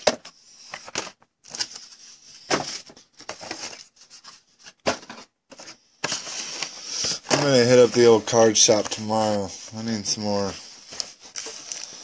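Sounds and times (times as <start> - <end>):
cardboard rustling and scraping: 0.0 - 12.0.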